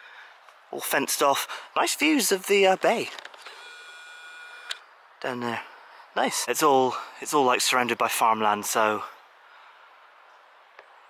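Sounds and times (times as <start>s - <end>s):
lens zoom motor whining: 3.3s - 4.9s.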